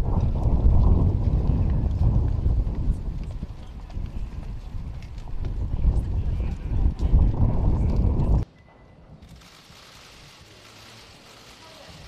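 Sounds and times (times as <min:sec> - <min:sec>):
wind rumble on microphone: 0:00.0 - 0:08.4
footsteps on stone steps: 0:00.2 - 0:08.4.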